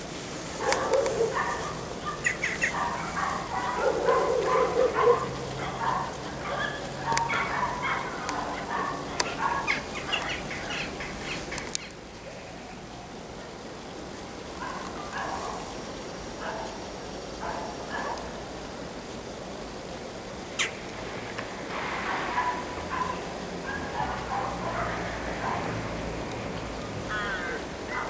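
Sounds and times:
birds calling: 0:00.0 - 0:28.0.

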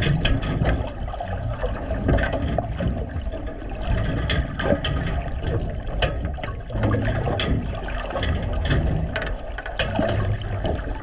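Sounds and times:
crackles and clicks: 0:00.0 - 0:11.0
low underwater rumble: 0:00.0 - 0:11.0
underwater water sloshing and bubbling: 0:00.0 - 0:11.0.

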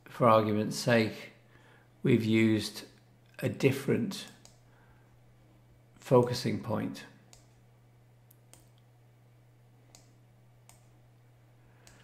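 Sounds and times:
low steady hum: 0:00.0 - 0:12.0
computer mouse clicks: 0:04.2 - 0:04.6, 0:07.3 - 0:07.6, 0:08.3 - 0:08.9, 0:09.9 - 0:10.9, 0:11.8 - 0:12.0.

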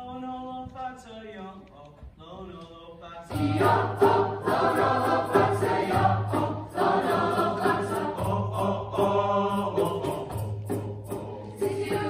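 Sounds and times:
choir singing in harmony: 0:03.3 - 0:12.0
hand percussion beat: 0:03.3 - 0:12.0.

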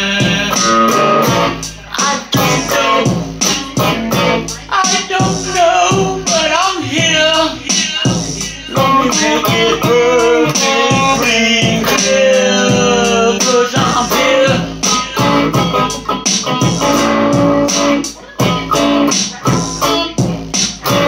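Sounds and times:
electric guitar melody: 0:00.0 - 0:21.0
steady beat: 0:00.0 - 0:21.0.

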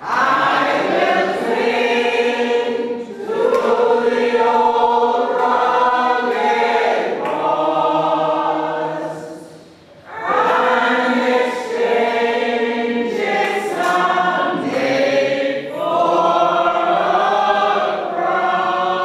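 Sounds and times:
choir singing: 0:00.0 - 0:19.0.

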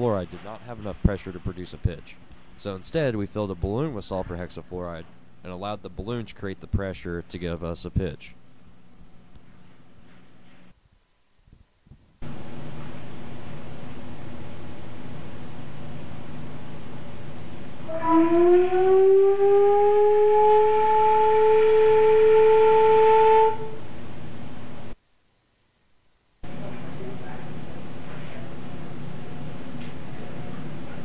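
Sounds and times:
organ pipe note rising in pitch: 0:17.8 - 0:23.9.

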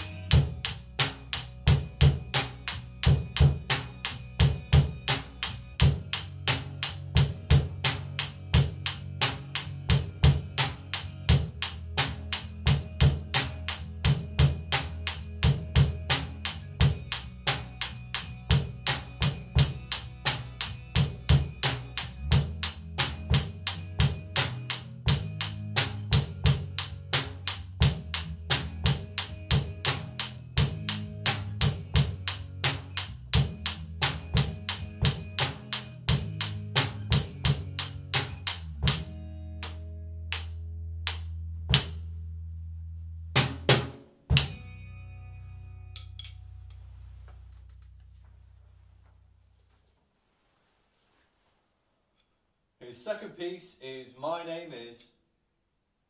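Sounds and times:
rock beat on drum kit: 0:00.0 - 0:42.1, 0:43.4 - 0:44.7, 0:46.0 - 0:46.4
backing music track: 0:00.0 - 0:42.2, 0:43.3 - 0:49.2.

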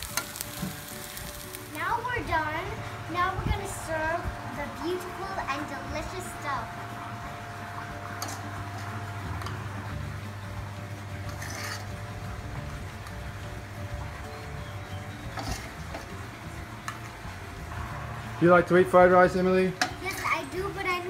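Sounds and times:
low hum: 0:01.5 - 0:21.0
metal ladle scraping a wok: 0:11.3 - 0:12.0, 0:15.4 - 0:15.8.

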